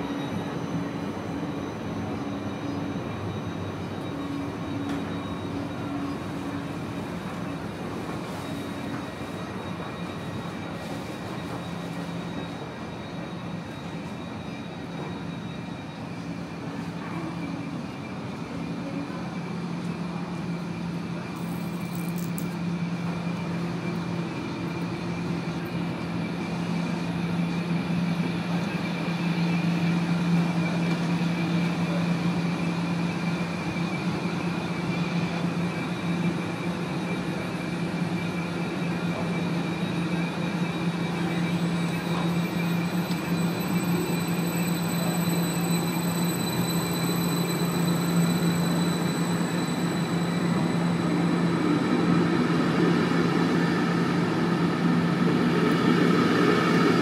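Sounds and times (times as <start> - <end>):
electric train equipment humming: 0.0 - 57.0.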